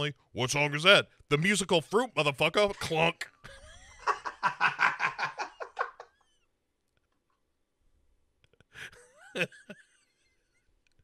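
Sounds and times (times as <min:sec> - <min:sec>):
man laughing hard: 0:02.8 - 0:06.4, 0:08.8 - 0:10.6.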